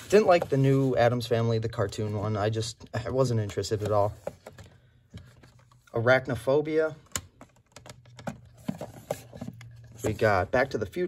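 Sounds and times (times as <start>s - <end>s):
plastic cases clicking and tapping: 7.1s - 9.8s.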